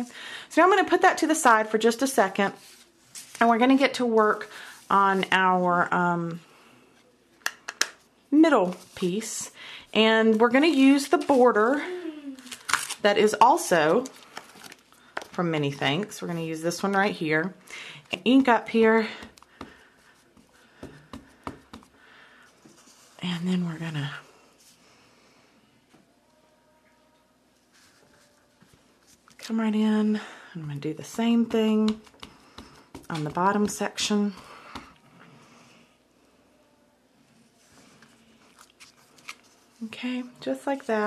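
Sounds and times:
paper rustling: 2.5 - 5.4, 10.2 - 13.0, 37.7 - 39.8.

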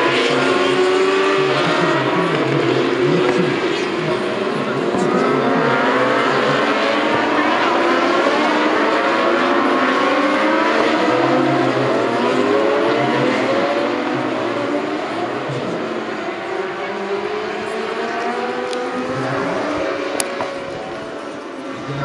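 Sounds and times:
racing motorcycles revving: 0.0 - 22.0.

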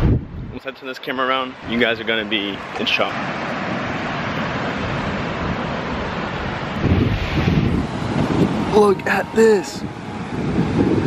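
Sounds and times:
wind buffeting microphone: 0.0 - 0.7, 1.4 - 11.0
surf breaking on a beach: 0.0 - 11.0.

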